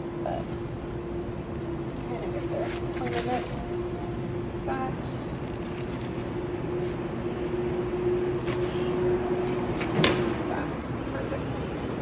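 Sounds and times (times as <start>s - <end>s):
steady hum: 0.0s - 12.0s
paper rustling: 0.4s - 3.6s, 5.3s - 7.5s, 8.4s - 9.6s.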